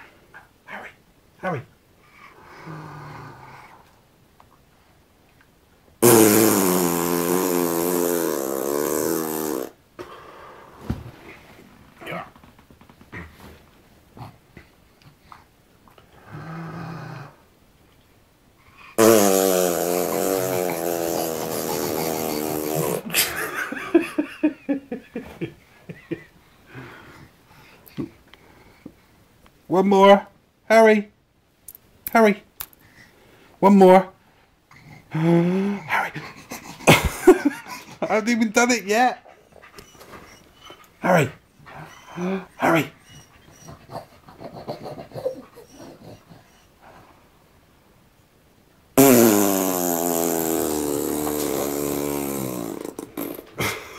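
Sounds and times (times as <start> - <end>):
person blowing a raspberry: 6.0 - 9.8, 19.0 - 23.3, 49.0 - 53.8.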